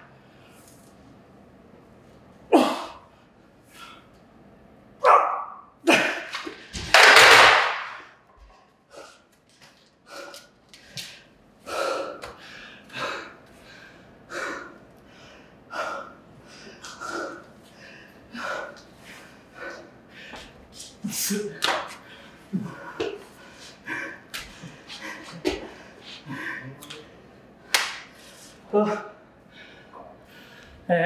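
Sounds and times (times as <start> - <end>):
weightlifter grunting: 2.5 - 3.0
man gasping breaths: 10.0 - 20.9.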